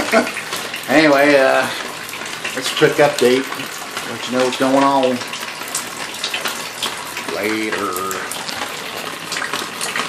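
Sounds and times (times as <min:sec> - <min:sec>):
sharp water drips: 0:00.0 - 0:10.0
water running steadily: 0:00.0 - 0:10.0.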